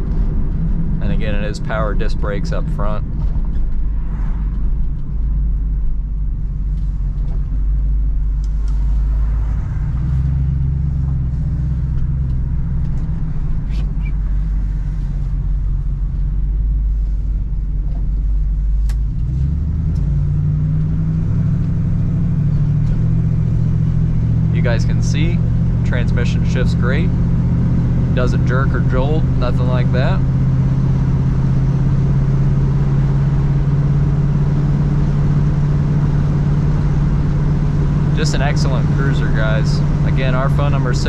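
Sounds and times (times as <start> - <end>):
car engine accelerating: 0.0 - 41.0.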